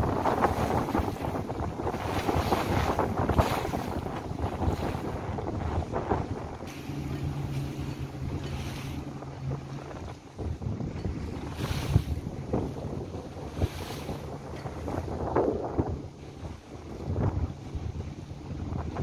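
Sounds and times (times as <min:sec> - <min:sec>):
water rushing and slapping: 0:00.0 - 0:19.0
wind buffeting microphone: 0:00.0 - 0:19.0.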